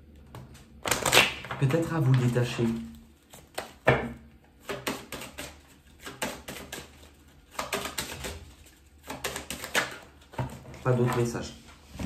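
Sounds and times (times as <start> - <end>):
cards clicking and tapping: 3.3 - 11.4.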